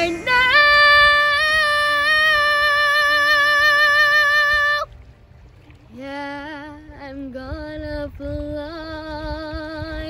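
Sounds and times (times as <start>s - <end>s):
girl singing: 0.0s - 4.9s, 5.9s - 10.0s.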